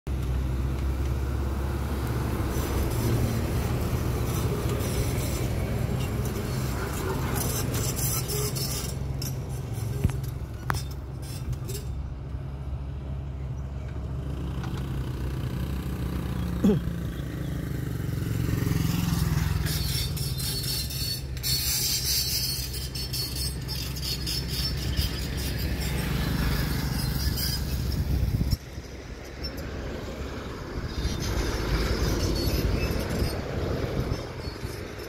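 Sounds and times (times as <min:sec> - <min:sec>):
vehicle engine hum and road noise: 0:00.1 - 0:35.0.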